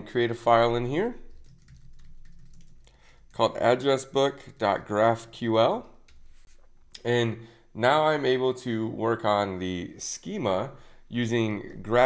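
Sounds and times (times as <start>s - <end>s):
keyboard typing: 1.2s - 3.4s.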